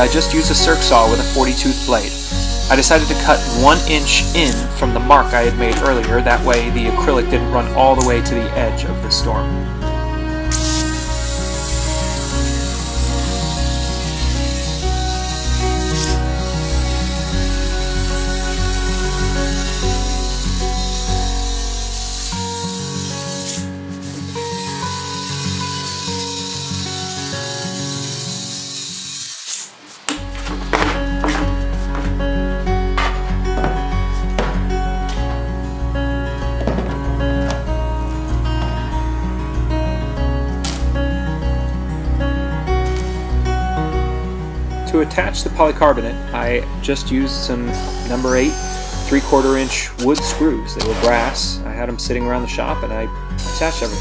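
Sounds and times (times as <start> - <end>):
circular saw cutting plastic sheet: 0.0 - 6.0, 10.5 - 30.3, 47.6 - 51.5, 53.4 - 54.0
background music: 0.0 - 29.3, 30.0 - 54.0.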